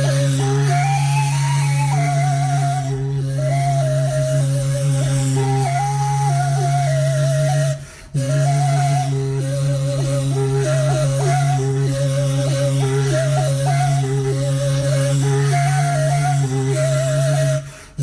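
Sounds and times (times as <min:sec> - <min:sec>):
end-blown flute melody: 0:00.0 - 0:17.7.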